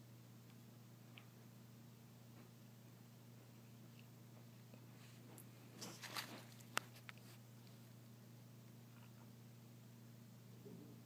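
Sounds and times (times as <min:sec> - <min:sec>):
steady low hum: 0:00.0 - 0:11.0
faint rustle: 0:05.0 - 0:07.9.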